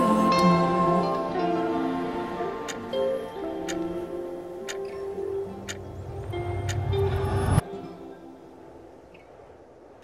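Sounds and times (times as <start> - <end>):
soft slow music: 0.0 - 9.7
clock ticking: 2.6 - 2.8, 4.6 - 5.0, 5.6 - 5.9.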